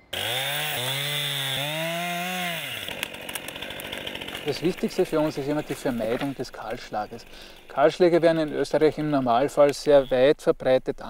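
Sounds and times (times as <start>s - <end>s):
chainsaw cutting tree: 0.0s - 10.1s.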